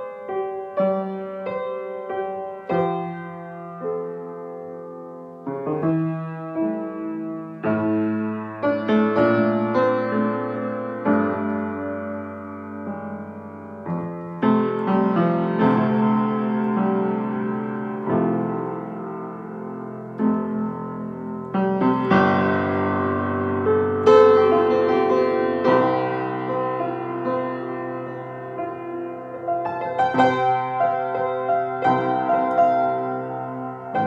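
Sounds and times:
grand piano improvisation: 0.0s - 34.0s.

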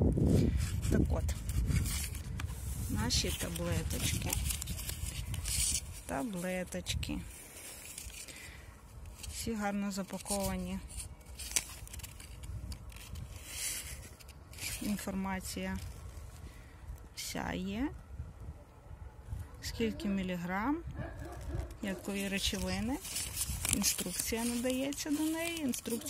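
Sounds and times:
cardboard box rustling: 0.5s - 8.4s, 10.0s - 15.0s, 21.4s - 26.0s.

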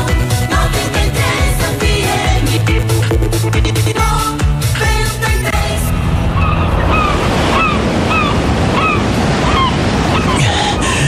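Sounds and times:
ocean surf washing: 5.6s - 11.0s.

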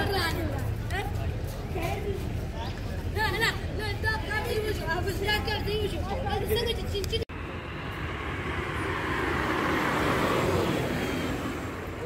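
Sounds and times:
voices: 0.0s - 12.0s
car driving past: 7.4s - 12.0s.

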